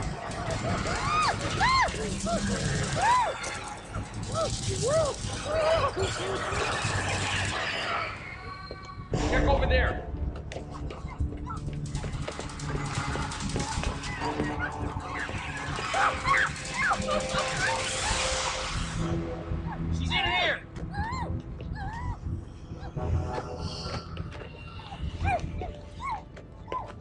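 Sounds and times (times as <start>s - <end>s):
background music: 0.0s - 27.0s.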